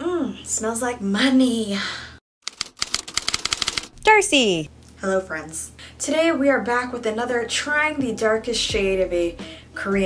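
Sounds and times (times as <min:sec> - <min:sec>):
rapid typewriter-like clicking: 0:02.4 - 0:04.0.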